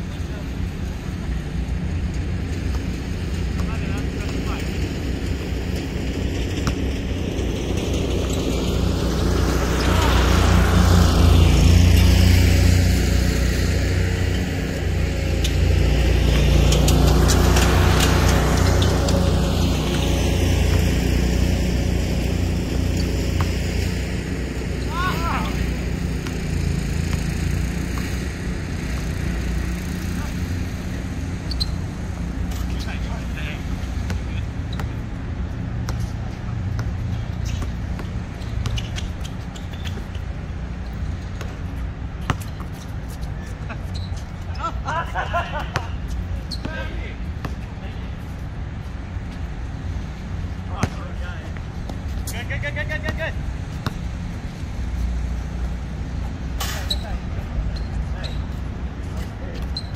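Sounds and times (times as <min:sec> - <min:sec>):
aircraft engine passing overhead: 0:00.0 - 0:42.0.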